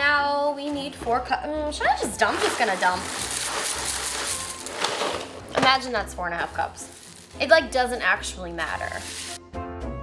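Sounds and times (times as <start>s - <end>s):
cereal pouring into glass bowl: 2.2s - 5.5s, 6.4s - 8.0s, 8.7s - 9.4s.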